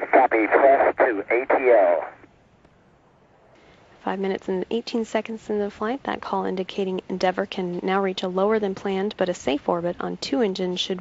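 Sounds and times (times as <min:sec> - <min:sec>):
radio voice: 0:00.0 - 0:02.2
broadcast feed hiss: 0:00.0 - 0:11.0.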